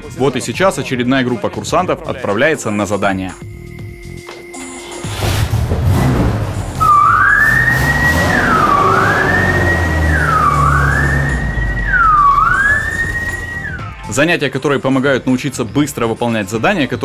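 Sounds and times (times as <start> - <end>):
fire engine siren sweeping: 5.1 - 14.0
truck engine running: 5.3 - 13.9.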